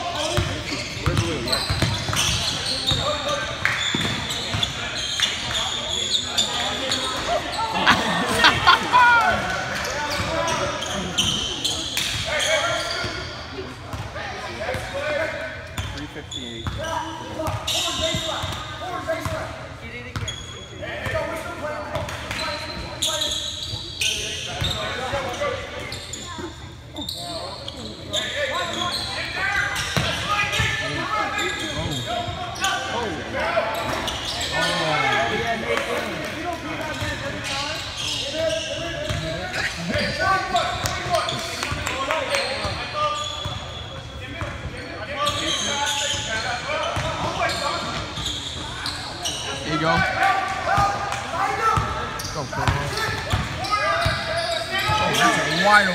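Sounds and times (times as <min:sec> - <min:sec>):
voices of players and spectators: 0:00.0 - 0:55.9.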